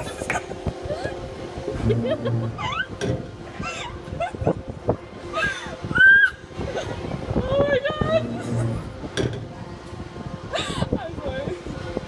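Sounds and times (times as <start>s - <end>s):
fairground ride knocks: 8.8s - 9.6s.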